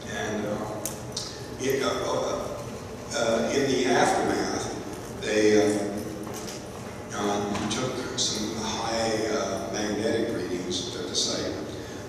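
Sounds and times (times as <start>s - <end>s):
man speaking into microphone: 0.0s - 6.4s, 7.0s - 12.0s.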